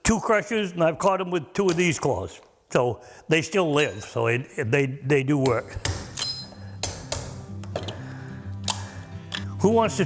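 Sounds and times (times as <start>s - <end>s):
background music with low notes: 5.5s - 10.0s.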